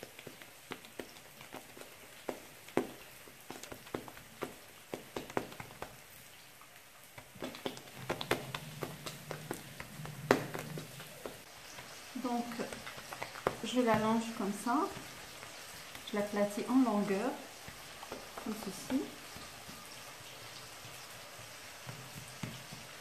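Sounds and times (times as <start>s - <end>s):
hands patting bread dough: 0.0s - 23.0s.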